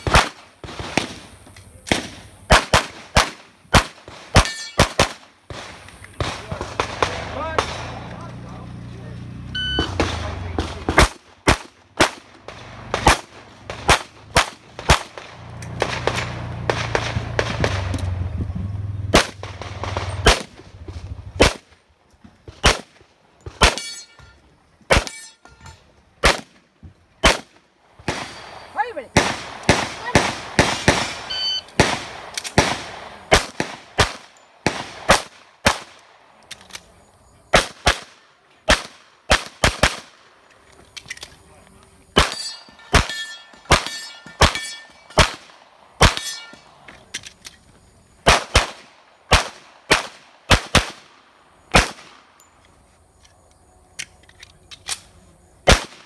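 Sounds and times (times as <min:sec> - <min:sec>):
rapid pistol shots: 0:01.9 - 0:08.1, 0:09.9 - 0:17.9, 0:27.2 - 0:28.6, 0:29.2 - 0:36.1, 0:37.5 - 0:40.3, 0:42.2 - 0:46.3, 0:48.2 - 0:52.3, 0:55.6 - 0:56.0
steel plates ringing: 0:04.4 - 0:04.9, 0:23.7 - 0:24.4, 0:25.0 - 0:25.9, 0:42.2 - 0:45.3, 0:46.0 - 0:46.7.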